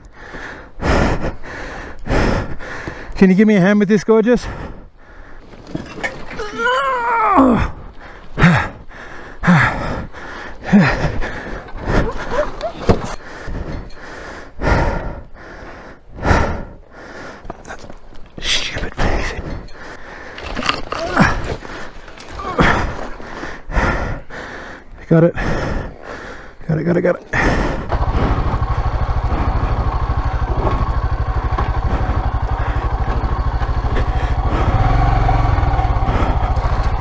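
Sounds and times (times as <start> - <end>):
person breathing hard: 0.0 - 3.2, 4.4 - 5.6, 7.6 - 18.2, 18.9 - 37.0
strained groan: 4.3 - 37.0.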